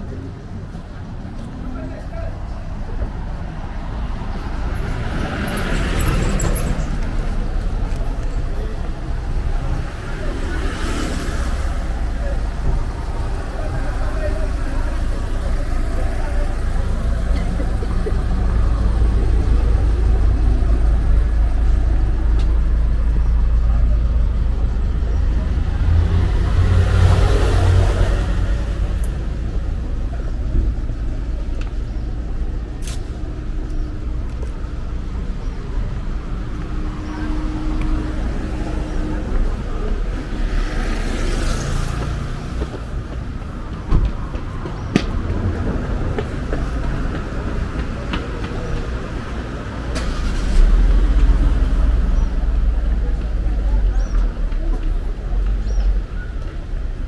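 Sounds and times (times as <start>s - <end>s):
traffic engines rumbling: 0.0s - 57.0s
vehicle passing close: 35.2s - 53.6s.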